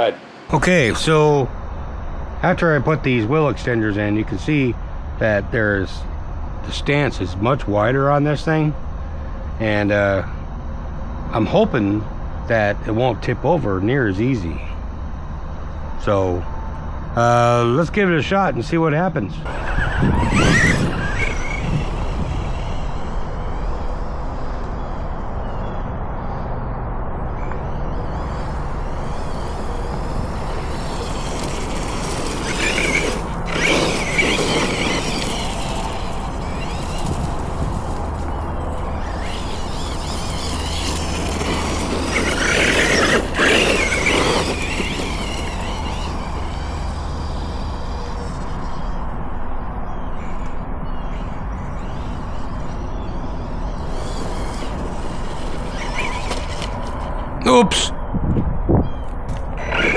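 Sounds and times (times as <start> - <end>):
low outdoor rumble: 17.8 - 50.1
rc truck electric motor whining: 19.4 - 26.4, 27.1 - 49.4, 50.4 - 57.3, 59.3 - 59.9.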